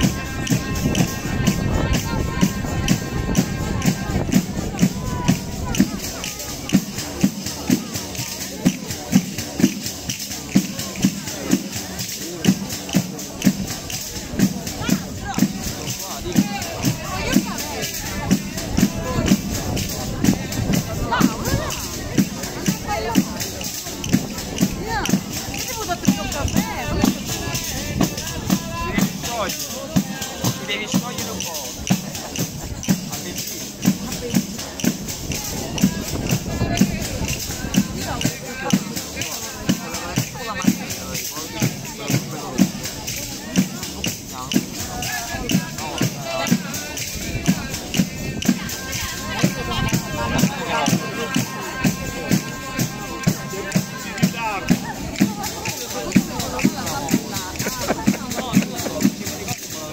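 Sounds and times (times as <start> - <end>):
frame drum with jingles: 0.0 - 59.9.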